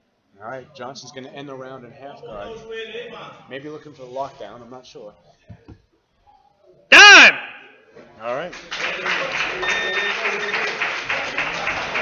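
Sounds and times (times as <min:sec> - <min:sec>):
crowd clapping: 0:08.4 - 0:12.0.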